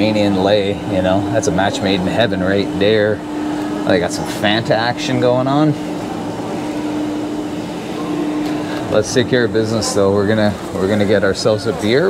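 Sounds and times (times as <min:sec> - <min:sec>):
machinery fan hum: 0:00.0 - 0:12.0.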